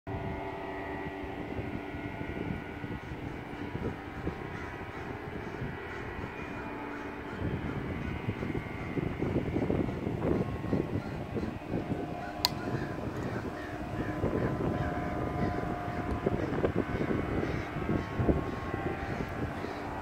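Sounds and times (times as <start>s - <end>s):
steady drone of held tones: 0.1s - 20.0s
faint bird calls: 2.8s - 20.0s
gusty rumbling: 7.4s - 20.0s.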